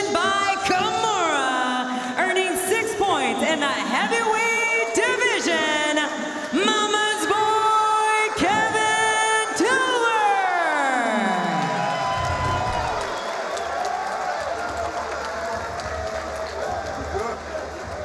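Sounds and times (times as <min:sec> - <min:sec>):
crowd cheering: 0:10.2 - 0:18.0.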